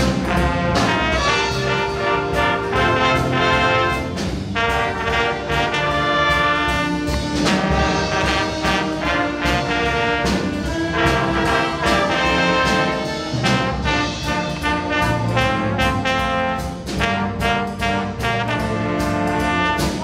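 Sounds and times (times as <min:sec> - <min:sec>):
jazz band playing: 0:00.0 - 0:20.0.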